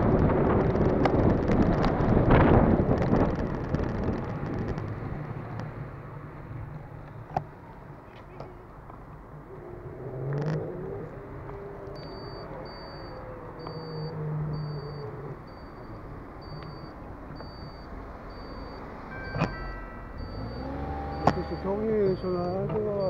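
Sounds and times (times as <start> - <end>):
car engine running: 0.0 - 7.6, 10.3 - 23.0
turn indicator ticking: 13.6 - 23.0
sharp click with beep: 20.2 - 21.7.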